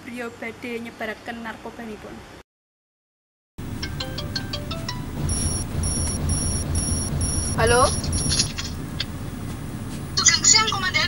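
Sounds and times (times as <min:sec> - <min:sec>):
car cabin hum: 0:03.6 - 0:09.2
background music: 0:03.8 - 0:05.6.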